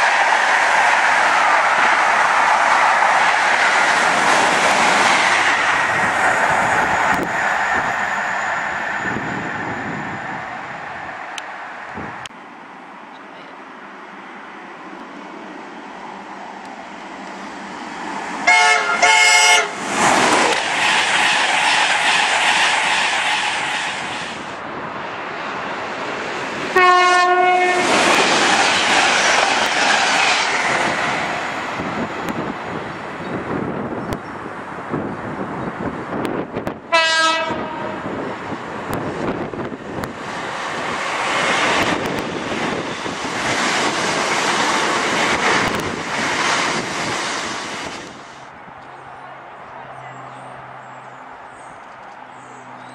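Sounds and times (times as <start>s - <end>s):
train passing: 0.0s - 52.9s
train horn blasts: 18.4s - 19.8s, 26.7s - 28.0s, 36.9s - 38.1s.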